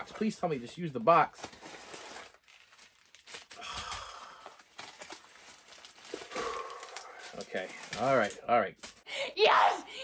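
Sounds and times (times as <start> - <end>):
packing paper crinkling: 0.0 - 9.0
man sighing: 3.6 - 4.6, 6.3 - 7.2.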